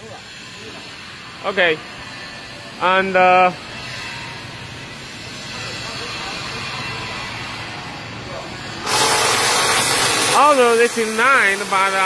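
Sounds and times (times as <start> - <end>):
workshop background noise: 0.0 - 12.0
loud steady hiss: 8.7 - 12.0.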